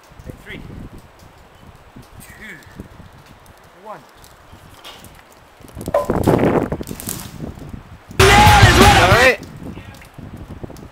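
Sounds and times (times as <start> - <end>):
wind noise on microphone: 0.0 - 10.9.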